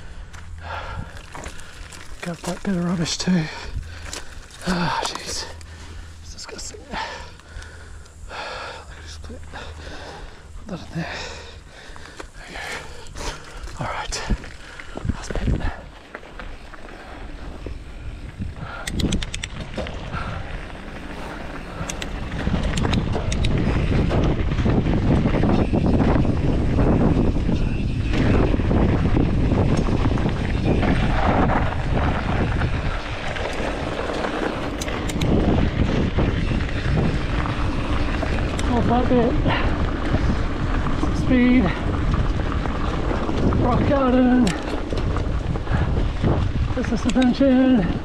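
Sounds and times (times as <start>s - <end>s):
bike clicks and rattles: 0.0s - 48.0s
bike tyres rolling on dirt: 0.0s - 48.0s
wind buffeting microphone: 0.0s - 48.0s.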